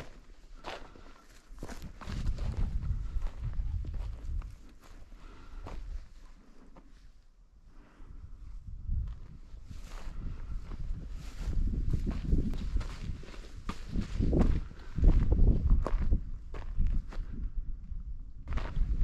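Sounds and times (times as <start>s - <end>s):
footsteps on a trail: 0.0s - 7.1s, 8.9s - 19.0s.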